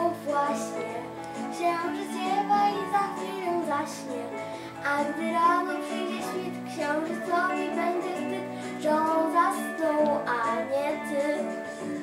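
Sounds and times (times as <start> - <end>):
girl singing lullaby: 0.0 - 12.0
instrumental accompaniment: 0.0 - 12.0.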